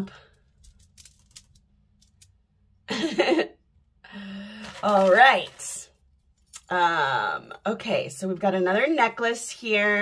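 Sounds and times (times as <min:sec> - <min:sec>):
beads clicking: 0:00.4 - 0:02.4
woman laughing: 0:02.9 - 0:03.6.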